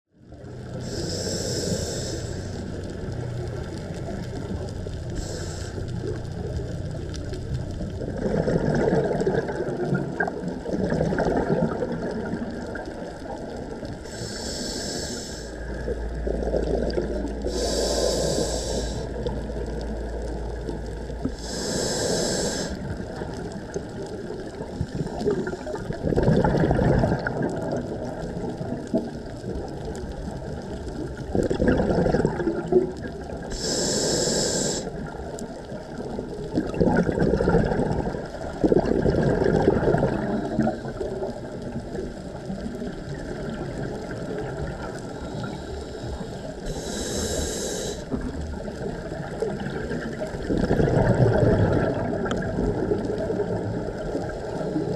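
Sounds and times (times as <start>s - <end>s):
exhaled bubbles gurgling: 0.2s - 54.9s
regulator inhalation hiss: 0.8s - 2.9s, 5.1s - 6.1s, 14.0s - 15.9s, 17.4s - 19.3s, 21.3s - 23.0s, 33.5s - 35.1s, 45.2s - 48.2s.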